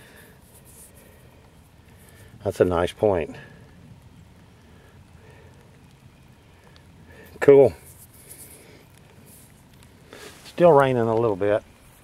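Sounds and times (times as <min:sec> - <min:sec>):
light hiss: 0:00.0 - 0:12.0.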